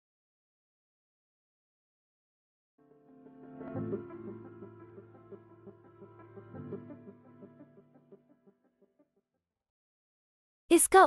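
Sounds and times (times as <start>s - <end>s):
intro music with plucked notes: 2.8s - 9.0s.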